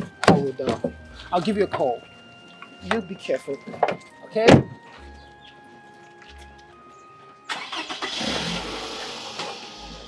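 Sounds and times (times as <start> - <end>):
soft background music: 0.0 - 10.0
car engine starting and running: 7.5 - 10.0.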